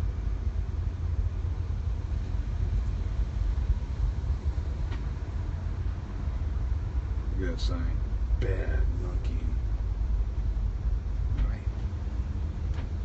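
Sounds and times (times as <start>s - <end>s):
bus engine and road noise: 0.0s - 13.0s.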